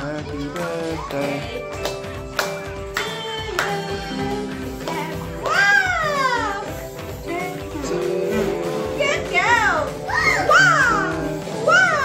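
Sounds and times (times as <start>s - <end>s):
background music: 0.0s - 12.0s
high-pitched voices calling in swoops: 10.0s - 12.0s.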